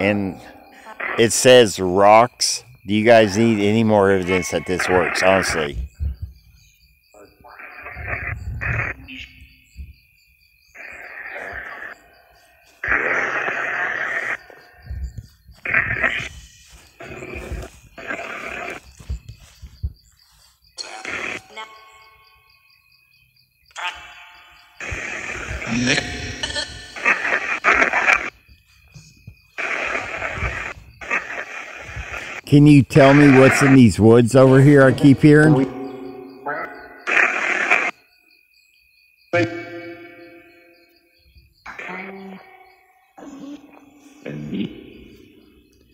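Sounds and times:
chopped voice and music fragments: 0.0s - 5.8s, 20.8s - 22.2s, 23.7s - 28.3s, 32.4s - 37.4s, 39.4s - 40.7s.

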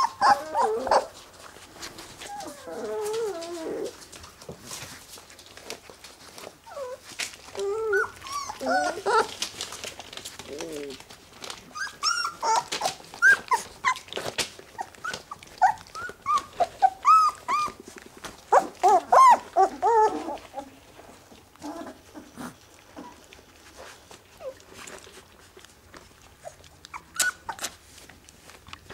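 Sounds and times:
puppies whining and squeaking: 0.0s - 4.2s, 5.6s - 28.9s.

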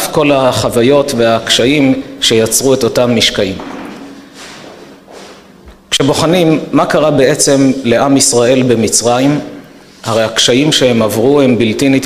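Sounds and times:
man speaking: 0.0s - 3.8s, 5.9s - 12.0s
faint room hum: 0.0s - 12.0s.

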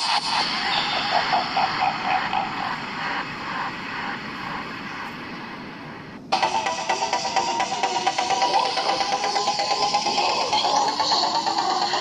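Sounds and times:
wind rush on microphone: 0.3s - 6.4s.

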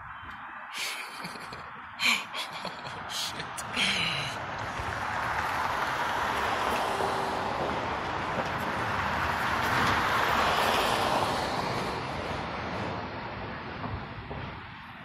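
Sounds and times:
rushing vehicle noise: 0.0s - 15.0s.

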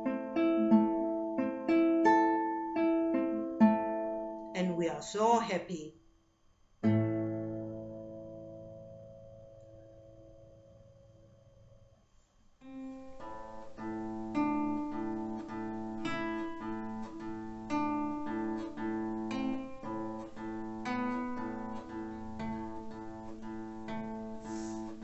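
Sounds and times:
acoustic guitar playing: 0.0s - 5.8s, 6.8s - 11.9s, 12.6s - 25.0s.

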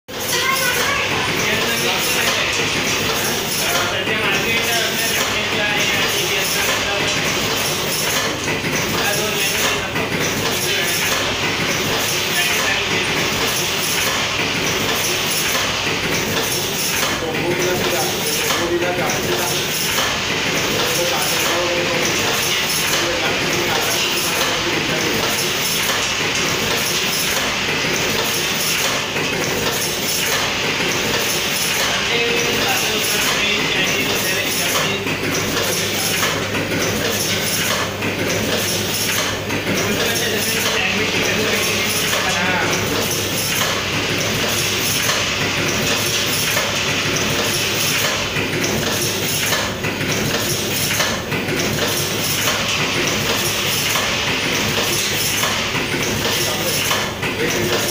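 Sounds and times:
packing machine clatter: 0.2s - 57.9s.

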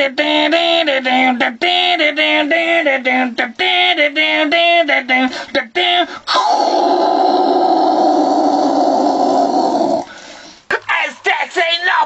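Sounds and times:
man yelling: 10.9s - 12.0s.

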